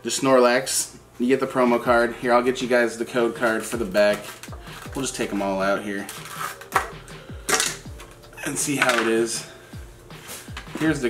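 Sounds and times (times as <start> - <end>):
background music with kick drum: 1.8 - 11.0
cards and plastic packaging rustling: 3.2 - 9.5.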